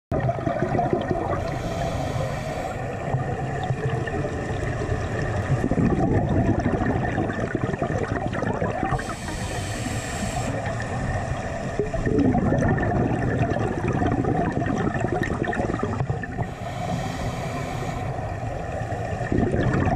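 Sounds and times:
bubbling exhalation: 0.1s - 1.8s, 5.4s - 9.5s, 11.8s - 16.5s, 19.2s - 19.9s
water rumble: 0.1s - 19.9s
hissing regulator inhalation: 1.3s - 3.0s, 8.9s - 11.5s, 16.3s - 18.5s.

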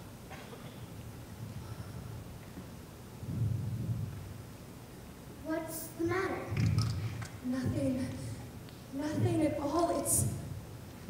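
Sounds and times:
low rumble: 3.1s - 4.7s.

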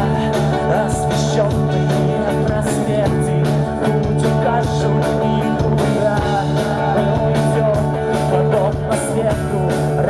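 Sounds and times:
rock band playing loudly: 0.0s - 10.0s.

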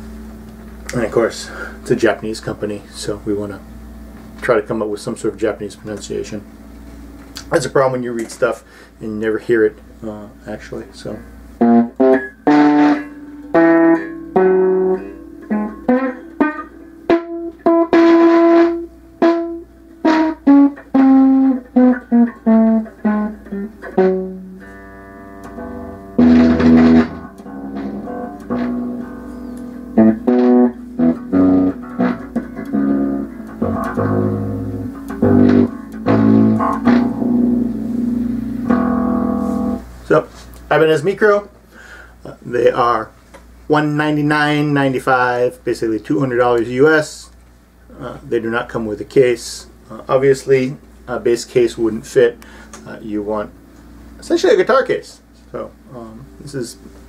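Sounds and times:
bass guitar played fingerstyle: 9.1s - 41.1s, 49.6s - 57.0s.

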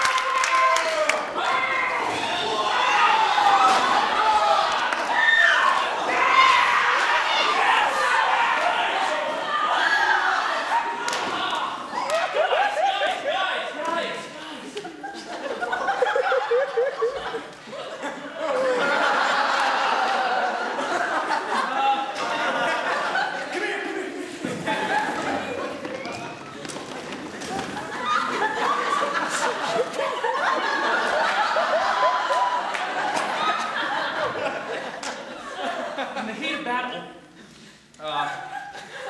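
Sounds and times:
footsteps on wooden stage: 24.6s - 28.0s.

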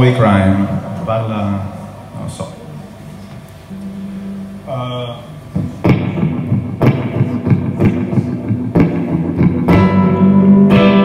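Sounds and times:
electric guitar chords ringing: 0.0s - 11.0s.

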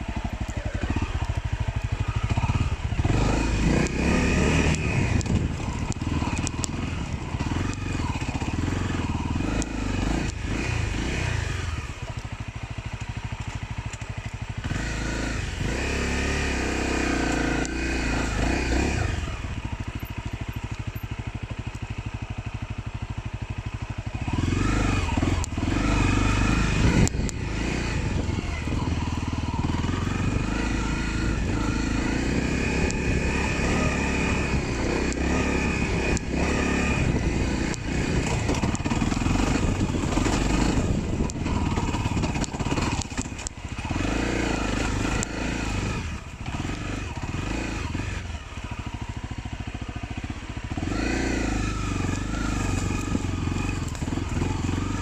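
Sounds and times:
dirt bike engine revving: 0.0s - 20.7s, 22.4s - 55.0s.

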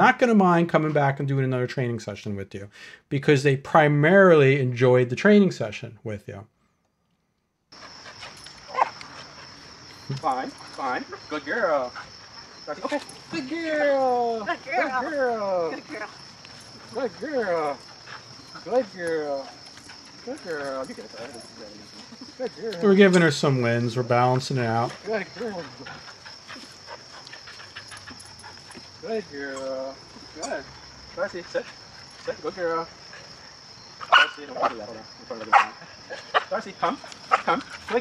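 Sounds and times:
crickets chirring: 0.0s - 38.0s
dog yipping: 7.8s - 9.2s, 34.0s - 34.5s.

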